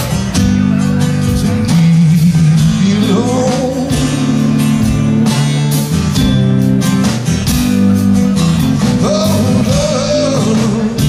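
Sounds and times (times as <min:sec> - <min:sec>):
drum and cymbal hits: 0:00.0 - 0:11.0
fretless bass guitar: 0:00.0 - 0:11.0
guitar chords: 0:00.0 - 0:11.0.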